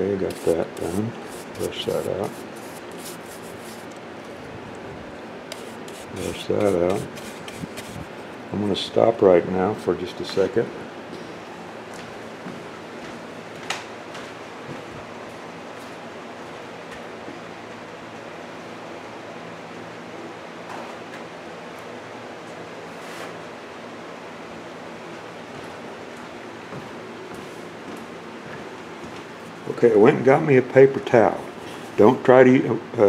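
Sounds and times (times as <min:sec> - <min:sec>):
fan rushing noise: 0:00.0 - 0:33.0.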